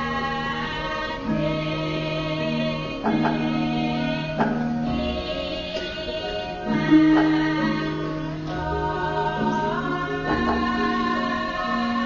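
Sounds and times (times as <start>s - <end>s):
gamelan dance music: 0.0s - 12.0s.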